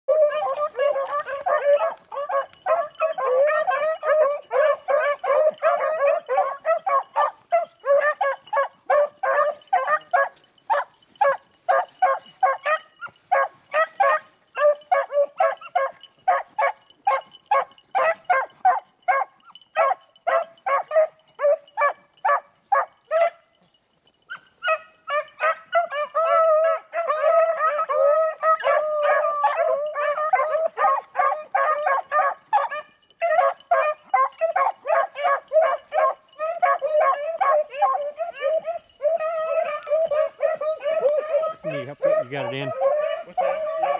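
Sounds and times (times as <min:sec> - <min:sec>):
beagles baying in chorus: 0:00.1 - 0:43.9.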